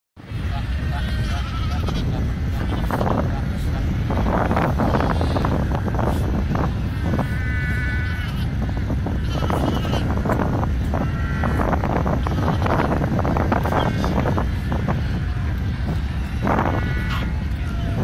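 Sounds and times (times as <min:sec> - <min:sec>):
wind rumble on microphone: 0:00.2 - 0:18.0
seal pups bleating: 0:06.9 - 0:08.6, 0:09.2 - 0:10.1, 0:10.9 - 0:18.0.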